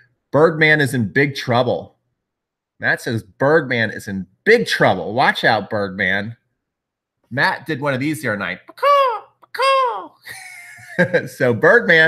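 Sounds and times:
man whooping: 8.7s - 10.2s.

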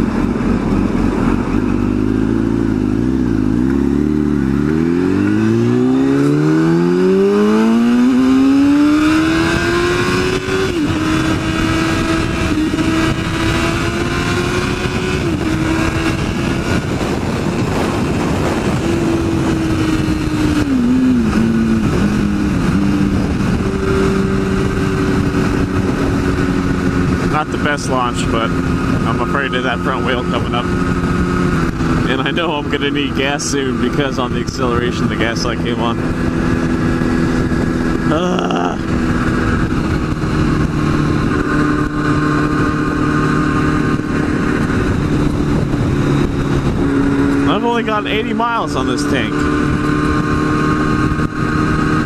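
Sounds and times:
motorcycle engine accelerating: 0.0s - 52.0s
wind noise: 0.0s - 52.0s.

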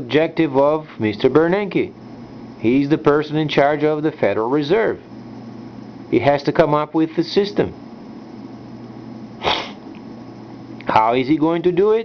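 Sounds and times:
low room hum: 0.0s - 12.0s
man taking sharp breath: 9.4s - 9.8s.

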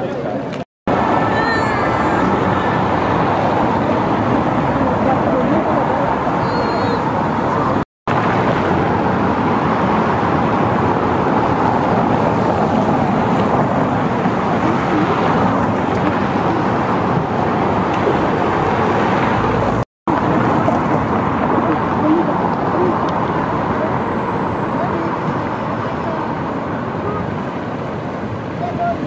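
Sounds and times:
cars driving on cobblestones: 0.0s - 29.0s.

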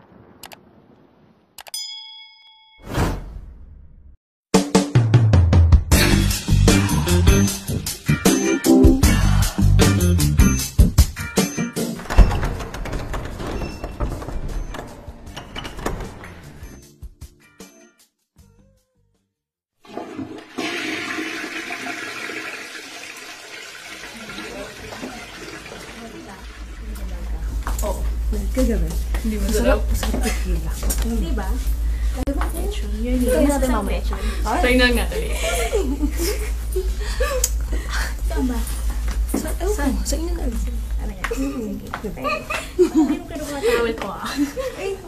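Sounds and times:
notification bell ding: 1.7s - 2.9s
toilet flushing: 19.8s - 27.1s.

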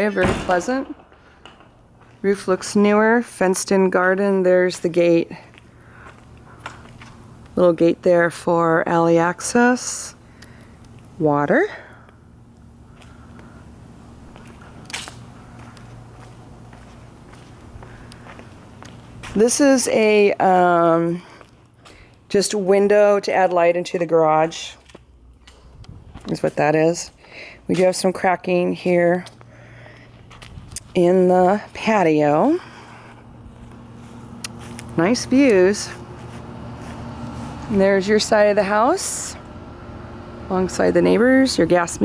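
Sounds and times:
faint footsteps: 0.0s - 2.8s, 5.3s - 7.6s, 14.2s - 19.7s, 28.9s - 38.5s
low steady hum: 0.0s - 42.0s.

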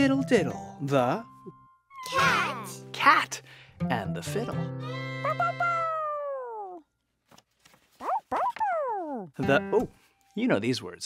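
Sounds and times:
cartoon cat meow: 1.9s - 2.7s, 5.2s - 6.9s.

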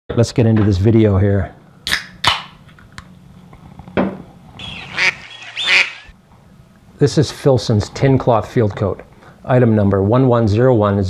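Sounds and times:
waterfowl calling: 4.6s - 6.1s.

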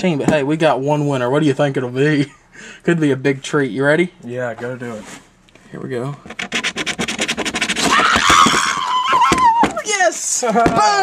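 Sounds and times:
coin scratching lottery ticket: 6.3s - 8.1s.

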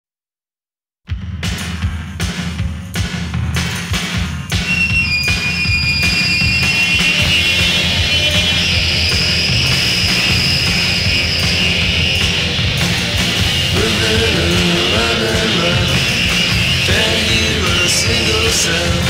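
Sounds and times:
drums and bass pounding: 1.1s - 19.0s
screeching guitar feedback: 4.5s - 19.0s.

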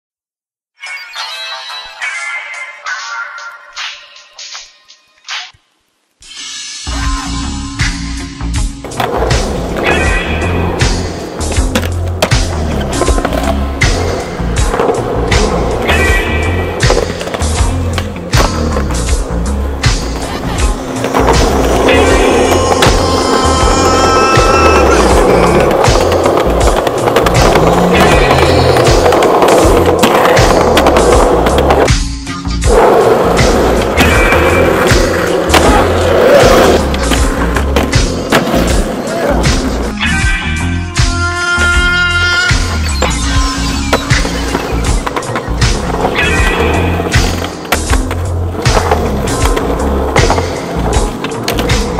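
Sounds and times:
music with bass beat: 6.8s - 51.9s
skateboard wheels rolling on concrete: 8.8s - 31.9s, 32.6s - 39.9s, 41.5s - 51.9s
skateboard clacks: 19.8s - 31.9s, 43.9s - 51.9s.

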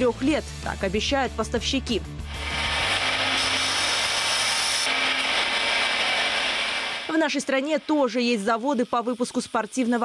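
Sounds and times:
abrasive wheel grinding steel: 2.2s - 7.9s.

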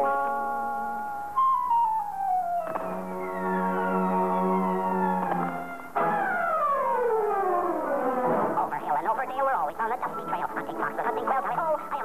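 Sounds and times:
sustained music chords: 1.8s - 8.6s.

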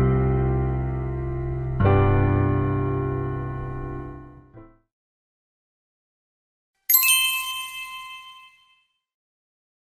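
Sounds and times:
bell-like chime: 6.9s - 9.0s.

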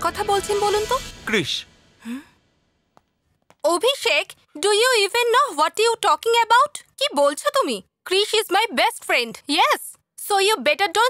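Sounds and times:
woman speaking: 0.0s - 1.1s, 3.6s - 11.0s
woman sighing: 2.0s - 2.4s.

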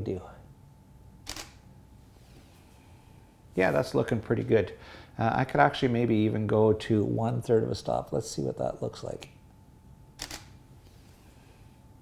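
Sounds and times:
camera shutter double click: 1.2s - 1.6s, 10.2s - 10.6s.

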